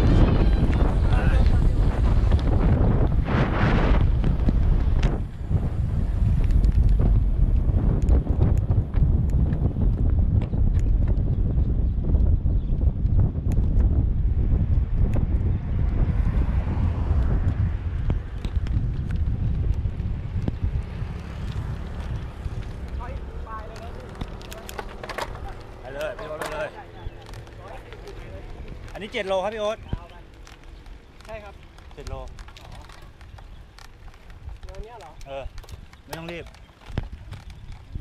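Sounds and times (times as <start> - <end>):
low rumble of bike ride: 0.0 - 38.0
wind buffeting microphone: 0.0 - 38.0
small clicks and rattles: 21.2 - 38.0.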